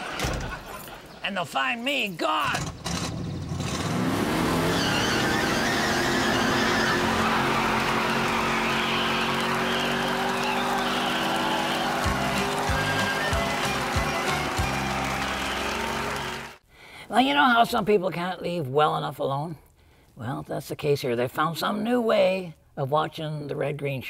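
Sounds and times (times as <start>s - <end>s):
car engine revving: 2.6s - 16.6s
tires squealing on gravel: 3.3s - 16.6s
music: 11.3s - 16.6s.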